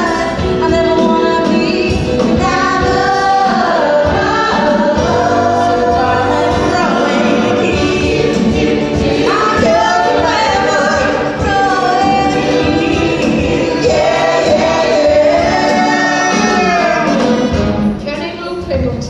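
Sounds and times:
people singing: 0.0 - 17.8
band accompanying: 0.0 - 19.0.

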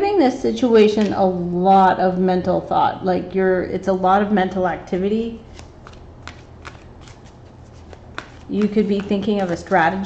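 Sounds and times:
cards ticking and flicking: 5.5 - 9.9.

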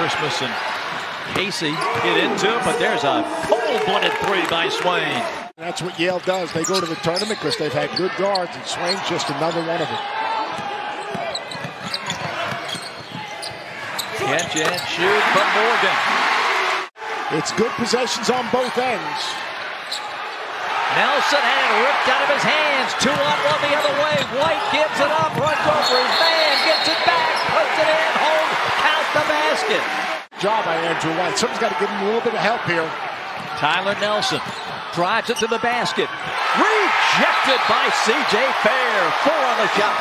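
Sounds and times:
crowd noise: 0.0 - 40.0
sneaker squeaks: 6.4 - 10.1, 11.0 - 15.0, 19.8 - 20.2, 23.2 - 27.6
basketball bouncing: 23.0 - 25.7
people shouting: 36.2 - 40.0.

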